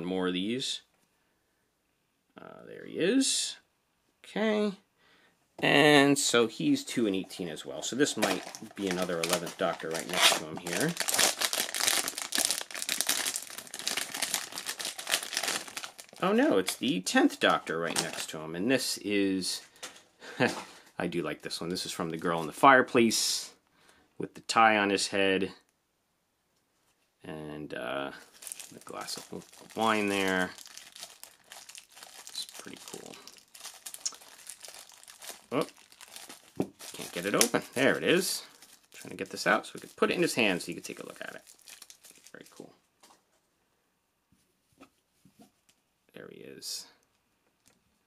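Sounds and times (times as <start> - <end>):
foil wrapper crinkling: 7.8 - 18.4, 28.2 - 42.6.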